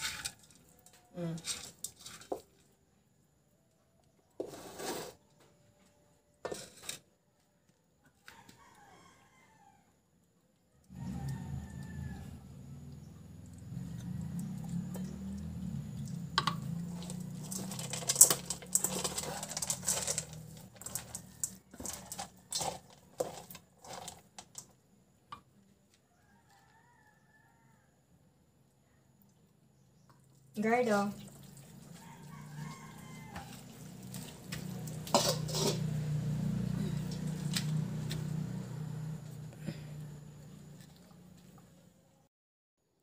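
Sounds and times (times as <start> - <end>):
clicks against metal bowl: 34.1 - 35.9.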